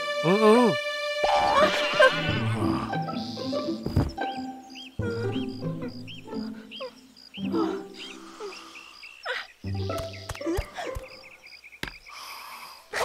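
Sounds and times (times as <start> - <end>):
sneaking background music: 0.8 - 8.3.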